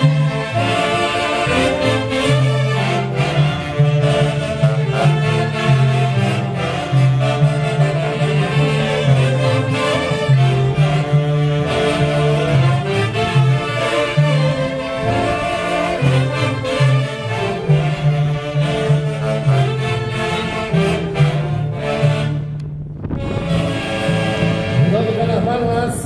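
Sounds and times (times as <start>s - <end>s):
saxophones playing: 0.0s - 25.9s
low bass line: 0.0s - 26.0s
violins playing: 0.0s - 26.0s.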